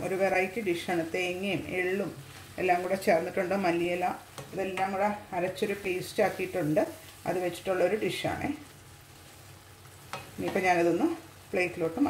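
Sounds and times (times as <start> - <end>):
woman speaking: 0.0 - 8.6, 10.4 - 12.0
vegetables sizzling in frying pan: 0.0 - 12.0.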